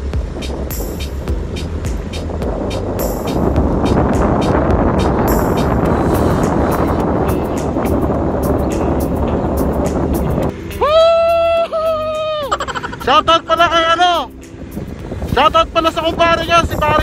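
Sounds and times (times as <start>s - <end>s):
background music: 0.0s - 17.0s
wind and road noise: 0.0s - 17.0s
person singing wavering notes: 10.5s - 13.6s.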